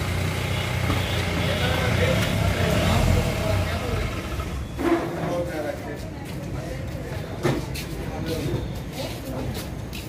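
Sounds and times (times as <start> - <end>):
diesel engine idling: 0.0 - 4.8
people talking: 1.0 - 10.0.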